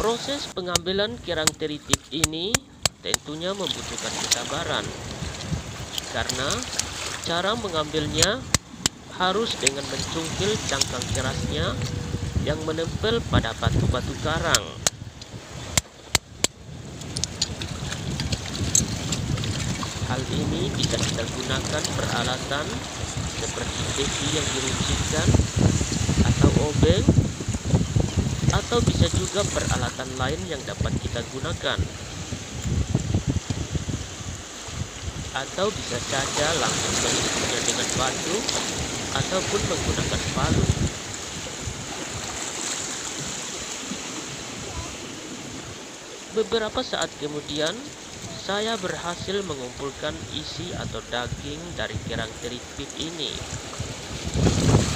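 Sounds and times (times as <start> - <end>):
small waves washing: 0.0 - 54.9.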